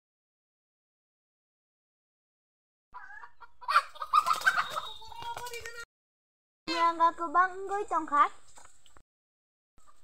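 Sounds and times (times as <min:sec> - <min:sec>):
chickens clucking: 0:03.0 - 0:05.7, 0:09.8 - 0:10.0.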